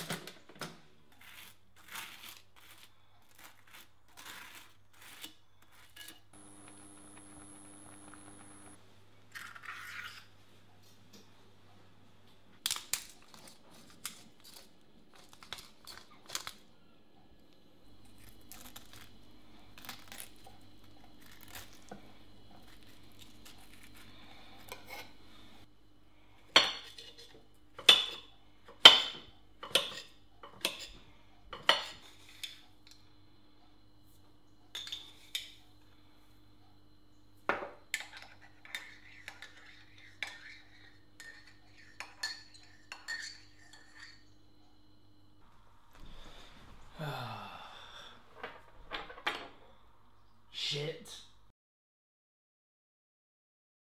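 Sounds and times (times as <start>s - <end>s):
metal spoon clinking in ceramic mug: 41.2s - 44.2s.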